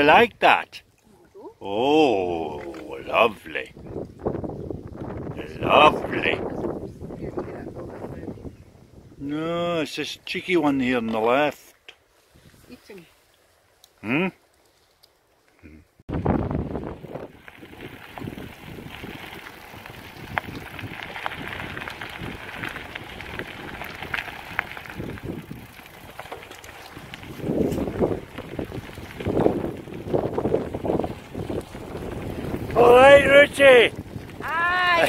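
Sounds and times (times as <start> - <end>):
bike tyres on gravel: 1.6 - 15.4, 16.1 - 35.0
wind buffeting microphone: 1.9 - 9.3, 16.1 - 35.0
bike clicks and rattles: 17.0 - 32.8.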